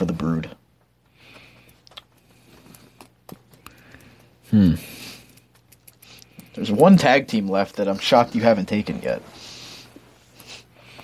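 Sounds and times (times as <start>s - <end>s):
low hum and hiss: 0.0s - 11.0s.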